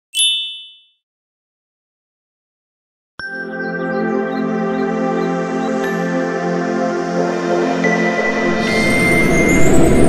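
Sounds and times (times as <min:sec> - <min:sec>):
bright high chime: 0:00.1 - 0:01.0.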